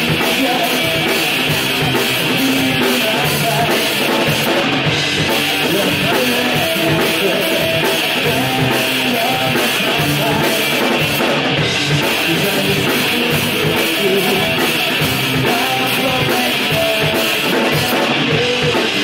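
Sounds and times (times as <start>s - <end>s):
drum kit: 0.0s - 19.0s
electric guitars: 0.0s - 19.0s.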